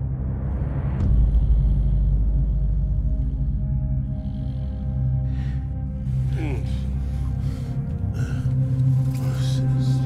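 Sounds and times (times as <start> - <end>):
low drone: 0.0 - 10.0.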